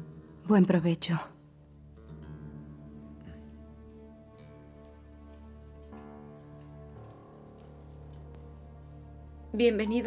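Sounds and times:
soft sustained chords: 0.0 - 10.0.

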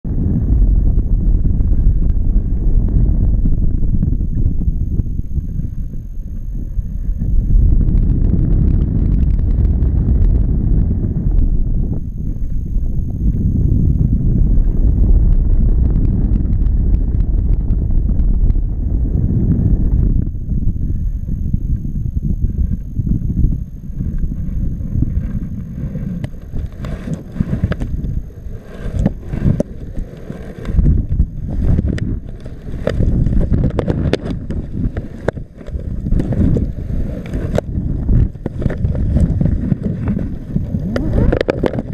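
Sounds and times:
sharp pops of wind buffeting: 0.0 - 41.9
wind rushing over microphone: 0.0 - 41.9.

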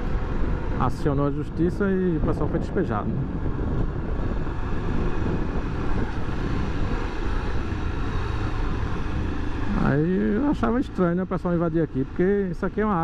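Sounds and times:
wind rush on microphone: 0.0 - 13.0.

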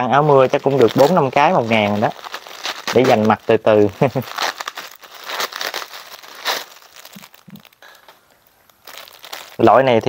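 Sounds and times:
bubble wrap crinkling: 0.0 - 10.0.

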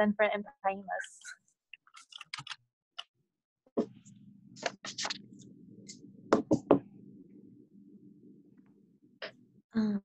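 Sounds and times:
faint low hum: 3.9 - 10.0.

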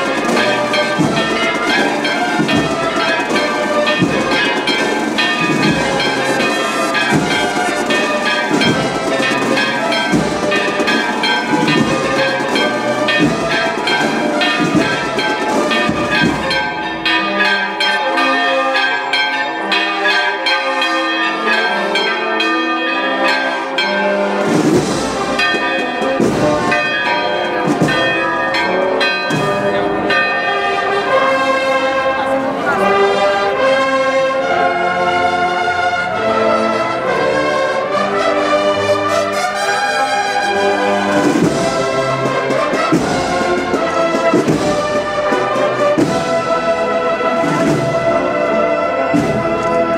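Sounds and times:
church bells ringing: 0.0 - 49.9.

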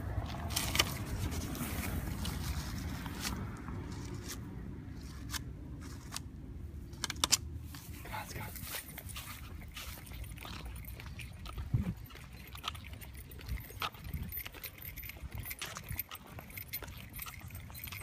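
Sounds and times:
leash and collar jingling: 0.2 - 4.1, 7.7 - 18.0.

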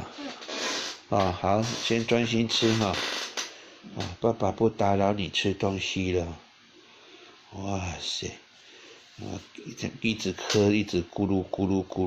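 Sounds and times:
person speaking: 9.2 - 12.0.

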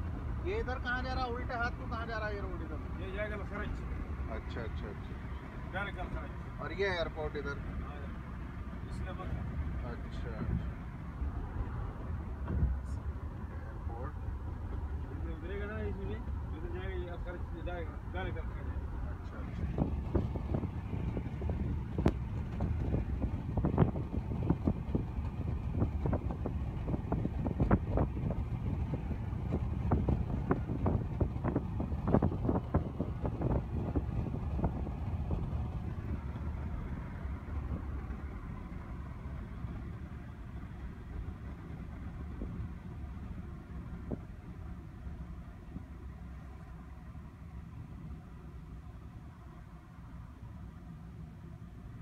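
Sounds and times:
low rumble of road and engine: 0.0 - 52.0.

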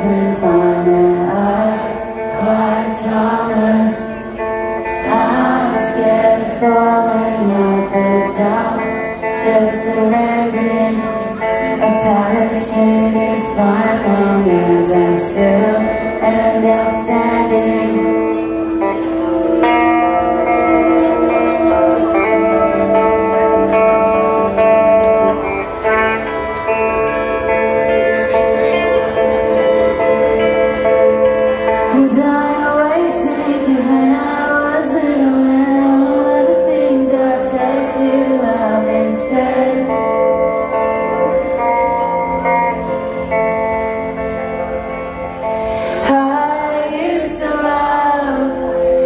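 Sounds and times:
electric guitar chords: 0.0 - 49.0
rock band playing live: 0.0 - 49.0.

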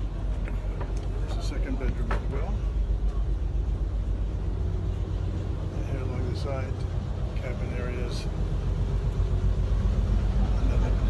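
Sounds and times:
boat engine rumbling: 0.0 - 11.0
faint voices: 0.0 - 11.0.

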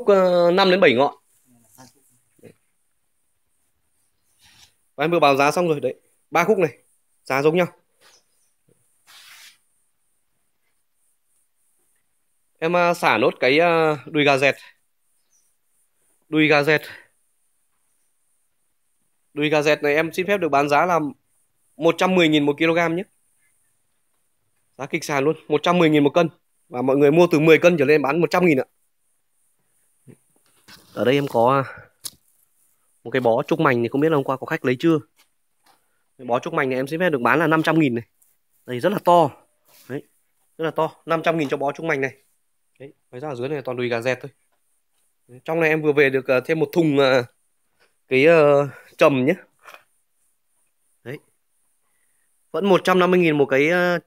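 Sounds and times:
man speaking: 0.0 - 2.6, 5.0 - 7.8, 12.6 - 14.8, 16.3 - 17.1, 19.4 - 21.2, 21.8 - 23.1, 24.8 - 28.7, 30.9 - 31.9, 33.0 - 35.1, 36.2 - 42.2, 42.8 - 44.4, 45.3 - 47.3, 48.1 - 49.5, 51.0 - 51.3, 52.5 - 54.0.

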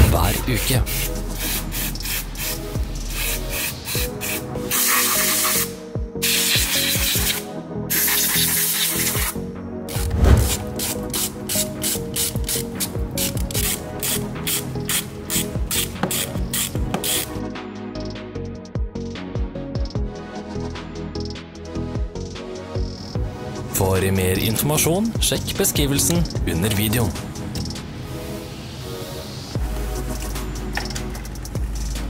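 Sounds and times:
music with steady beat: 0.0 - 23.5, 29.6 - 32.0
aerosol spray hissing: 0.8 - 17.3.

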